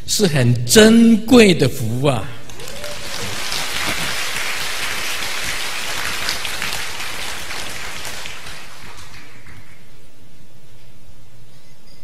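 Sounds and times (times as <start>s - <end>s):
audience applauding: 2.5s - 10.1s.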